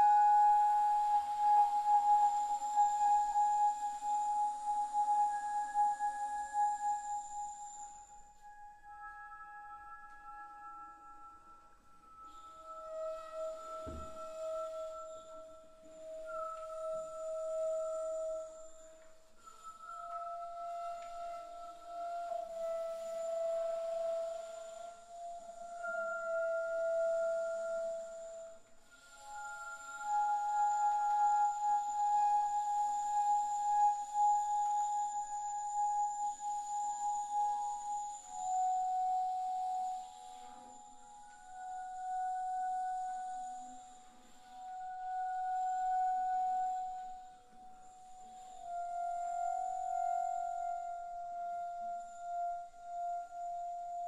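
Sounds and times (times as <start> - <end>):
bass flute long held notes: 0.0 - 54.0.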